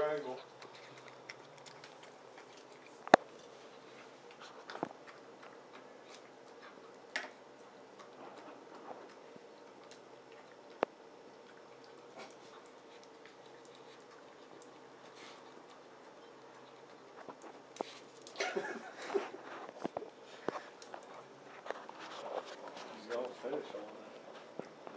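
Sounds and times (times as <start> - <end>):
dog chewing and licking: 0.0 - 24.9.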